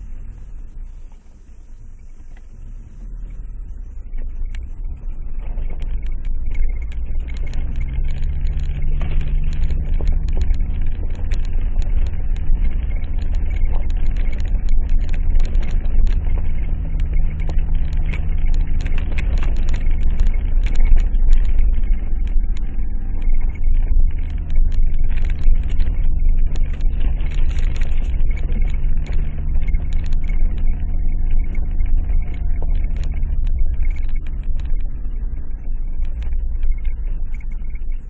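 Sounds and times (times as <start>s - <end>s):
low road rumble: 0.0s - 38.0s
vehicle engine running: 0.0s - 38.0s.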